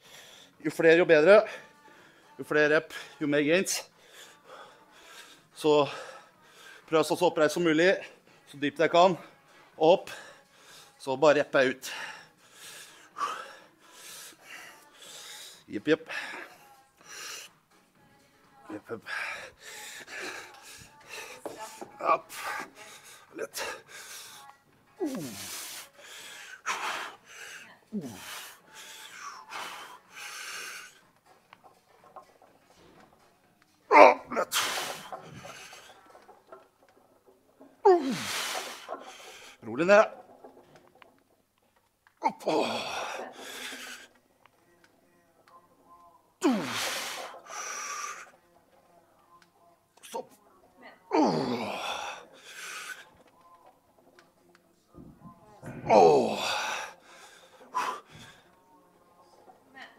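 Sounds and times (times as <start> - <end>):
man breathing strained: 11.8 - 17.6, 19.0 - 33.2, 33.9 - 41.2, 42.2 - 44.2, 46.4 - 48.4, 51.1 - 53.4, 55.6 - 58.6
man grunting: 33.9 - 34.8, 37.9 - 38.3, 42.2 - 43.2, 51.1 - 52.2, 55.8 - 56.9
man groaning loudly: 51.1 - 52.0, 55.8 - 56.8.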